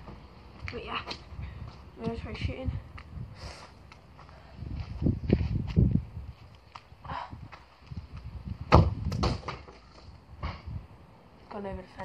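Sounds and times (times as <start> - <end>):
crutches and feet on artificial turf: 0.0 - 12.0
football being kicked: 8.7 - 9.8.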